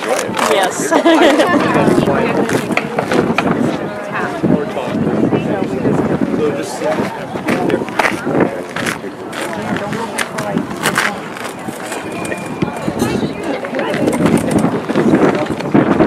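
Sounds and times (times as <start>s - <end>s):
indistinct voices talking: 0.0s - 16.0s.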